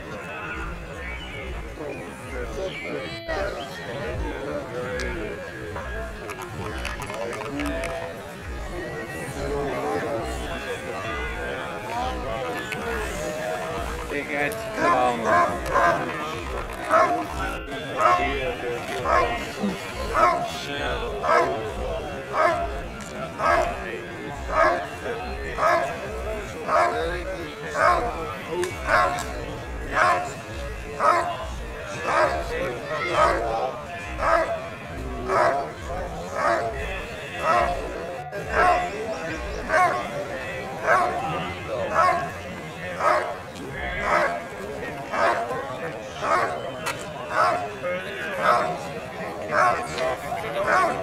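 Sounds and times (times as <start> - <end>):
dog barking loudly: 14.8 - 16.1, 16.9 - 17.3, 18.0 - 18.3, 19.0 - 19.3, 20.1 - 20.5, 21.2 - 21.5, 22.3 - 22.6, 24.5 - 24.8, 25.6 - 25.9, 26.7 - 27.0, 28.8 - 29.2, 29.9 - 30.3, 31.0 - 31.3, 32.1 - 32.4, 34.2 - 34.5, 35.3 - 35.6, 36.4 - 36.7, 39.7 - 40.0, 40.8 - 41.2, 41.9 - 42.3, 43.0 - 43.4, 44.0 - 44.3, 45.2 - 45.4, 46.2 - 46.5, 47.4 - 47.6, 49.5 - 49.9, 50.6 - 51.0.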